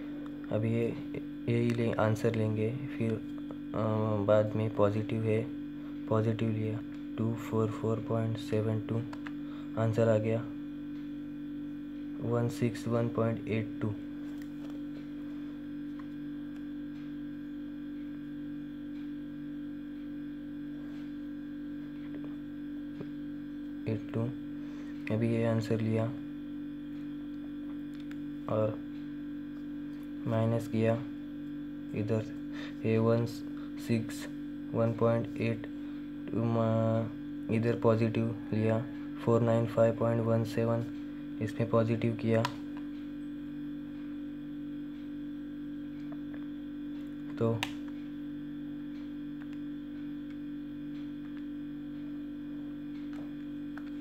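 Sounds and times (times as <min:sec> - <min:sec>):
electrical hum: 0:00.0 - 0:54.0.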